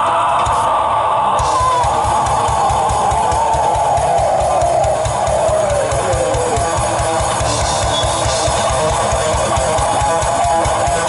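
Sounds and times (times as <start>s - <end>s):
heavy metal band playing: 0.0s - 11.0s
rapid kick drum: 1.4s - 11.0s.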